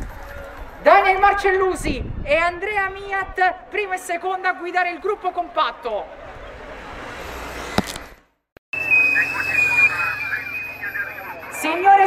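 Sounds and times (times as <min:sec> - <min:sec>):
car approaching: 0:05.8 - 0:08.2.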